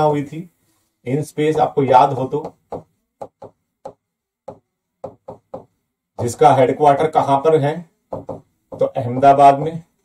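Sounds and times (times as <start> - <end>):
pen tapping on writing board: 2.4 - 6.3, 8.1 - 9.4.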